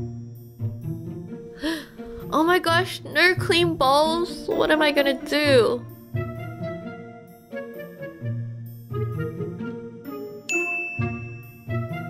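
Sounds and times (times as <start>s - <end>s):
light background music: 0.0s - 12.0s
bright high chime: 10.5s - 12.0s.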